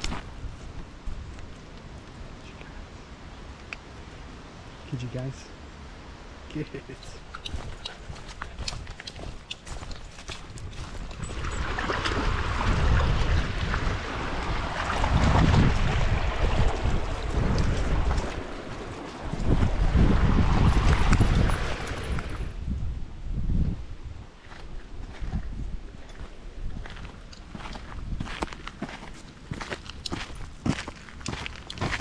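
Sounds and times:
wind buffeting microphone: 7.3s - 32.0s
river running over rocks: 7.6s - 22.5s.

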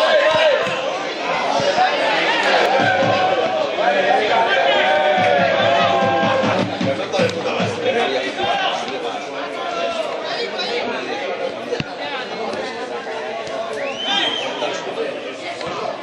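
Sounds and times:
spectators chatting: 0.0s - 16.0s.

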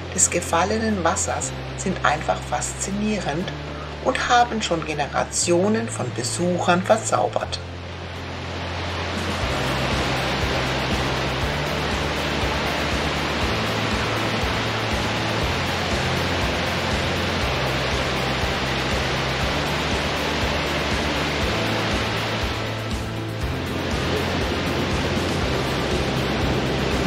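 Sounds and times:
background music with low bass: 0.0s - 27.0s
waterfall rushing: 1.0s - 27.0s.

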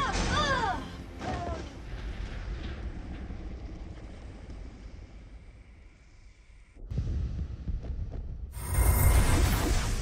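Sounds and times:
deep rumble with low pulses: 1.8s - 8.5s.

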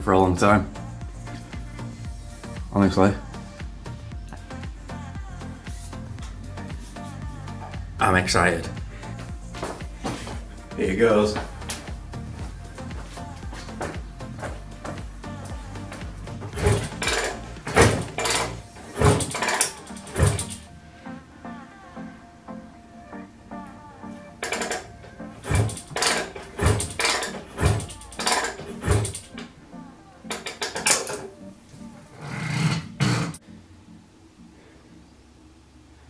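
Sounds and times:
background music: 0.0s - 36.0s.

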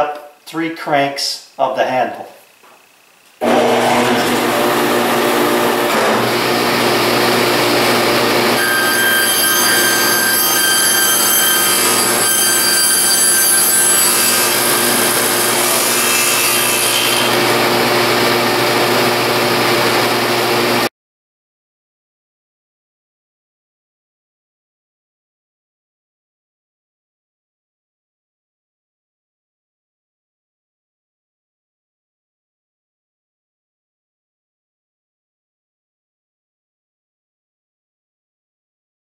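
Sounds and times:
saw blade cutting wood whine: 3.4s - 20.9s
table saw humming: 3.4s - 20.9s.

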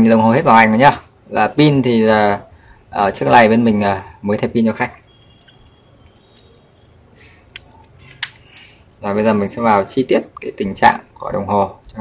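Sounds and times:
metal watch bracelet clinking: 4.9s - 9.1s.

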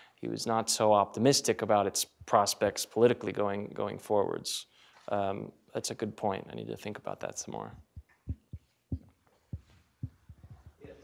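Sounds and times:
microphone handling thumps: 7.8s - 11.0s.

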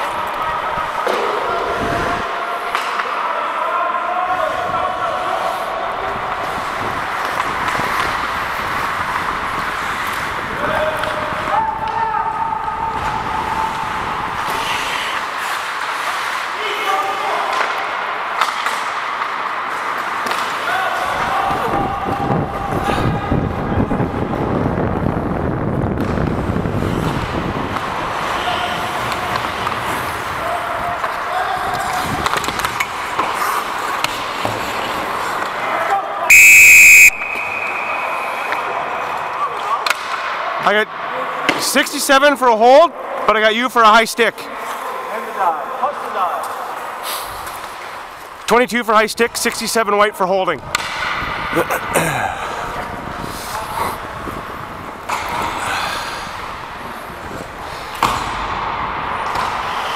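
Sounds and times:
skating on ice: 0.0s - 36.2s, 44.4s - 48.5s, 52.1s - 59.9s
referee whistle blast: 36.3s - 38.7s.

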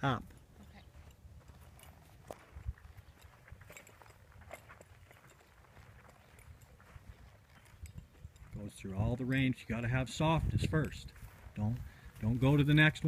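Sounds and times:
horse hooves on dirt and hay: 0.3s - 13.0s.

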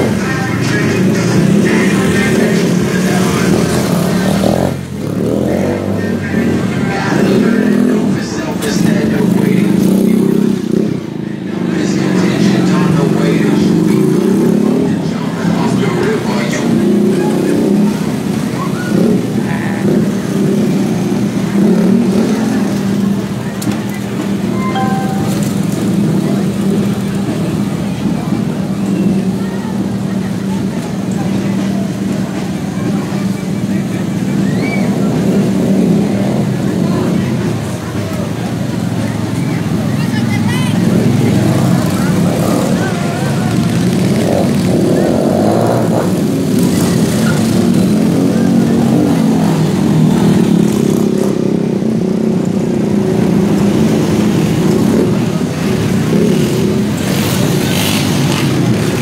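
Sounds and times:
crowd chatter: 0.0s - 59.0s
motorcycle engines running: 0.0s - 59.0s.

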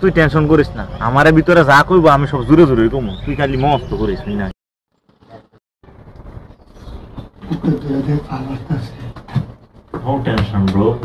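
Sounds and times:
man speaking: 7.4s - 9.1s.

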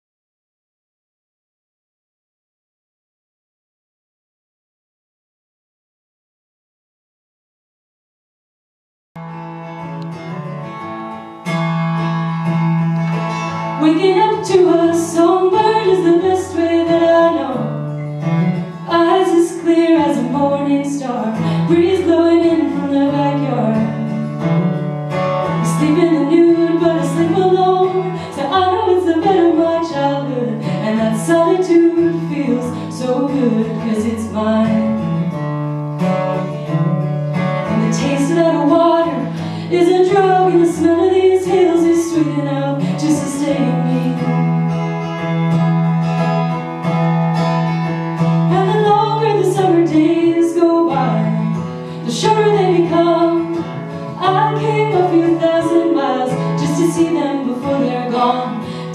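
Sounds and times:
acoustic guitar strumming: 9.2s - 58.9s
woman singing a folk song: 13.5s - 44.8s, 48.2s - 58.9s.

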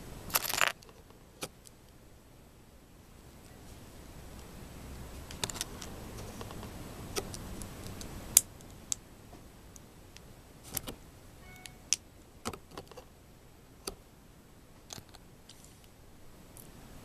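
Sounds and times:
plastic pieces clicking together: 5.2s - 9.0s.

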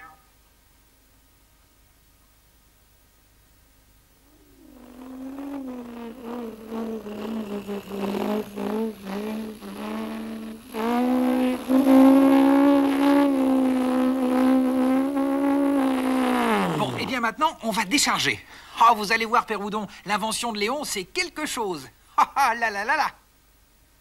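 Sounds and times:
small vehicle engine hum: 4.3s - 16.1s.

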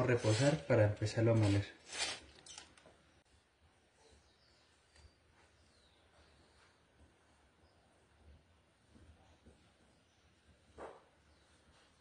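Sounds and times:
coffee beans rasping on metal tray: 0.0s - 0.6s, 1.3s - 2.6s.

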